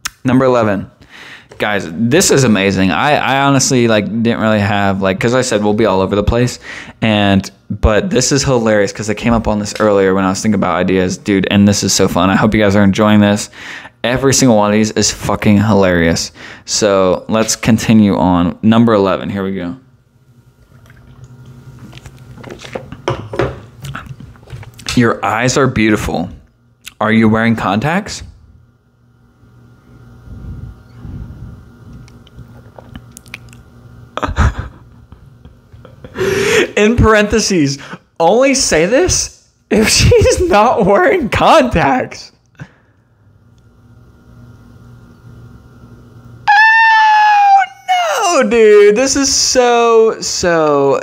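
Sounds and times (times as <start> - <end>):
steady low hum: 0.0 - 46.5
man gulping beer: 20.7 - 23.1
man's falsetto squeal: 46.4 - 48.4.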